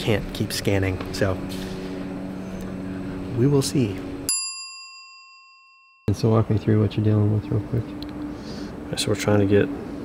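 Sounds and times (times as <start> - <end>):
bell ding: 4.3 - 6.3.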